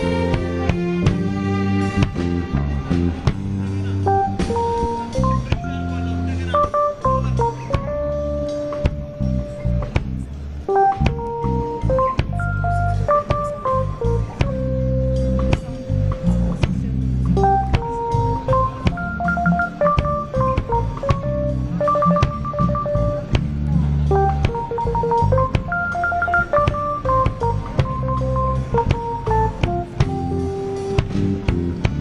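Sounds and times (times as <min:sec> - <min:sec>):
drum beat: 0:00.0 - 0:05.8, 0:09.9 - 0:14.8, 0:15.4 - 0:32.0
bass: 0:00.0 - 0:32.0
keyboard melody: 0:00.0 - 0:32.0.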